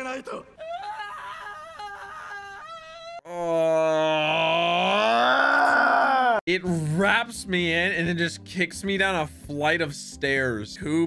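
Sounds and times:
man groaning: 0:03.2 - 0:06.4.

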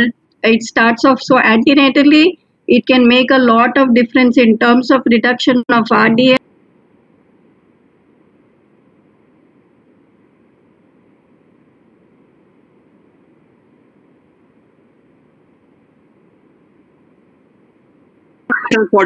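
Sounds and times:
faint line noise hiss: 0:06.2 - 0:18.8.

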